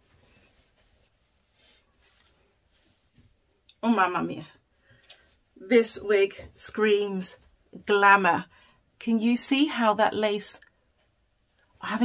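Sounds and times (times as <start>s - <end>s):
fingers rustling wig hair: 0.0s - 3.8s.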